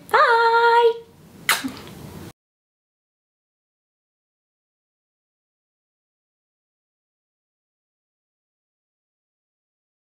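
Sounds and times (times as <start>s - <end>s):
woman blowing a kiss: 1.5s - 2.0s.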